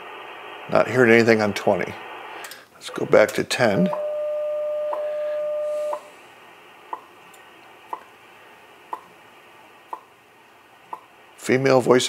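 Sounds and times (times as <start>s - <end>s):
receiver hiss: 0.0s - 12.0s
time signal ticks: 3.2s - 4.1s
steady time signal tone: 3.8s - 6.2s.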